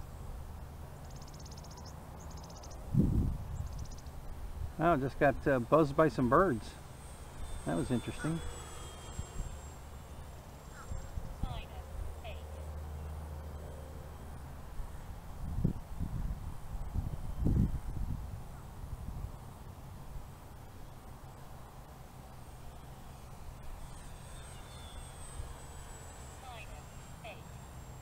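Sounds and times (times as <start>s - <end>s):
model plane motor droning: 0.0s - 28.0s.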